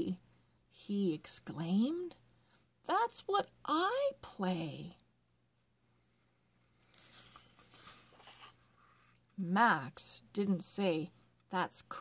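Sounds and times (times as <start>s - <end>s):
book page being turned: 6.8s - 9.4s.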